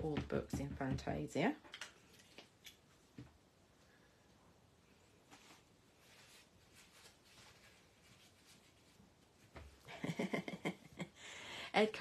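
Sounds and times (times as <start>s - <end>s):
faint rustling and handling: 0.0s - 11.1s.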